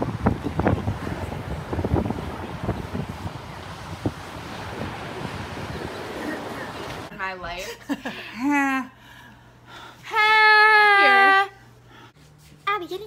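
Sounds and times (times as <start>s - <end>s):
ocean surf on beach: 0.0s - 7.1s
wind buffeting microphone: 0.0s - 7.1s.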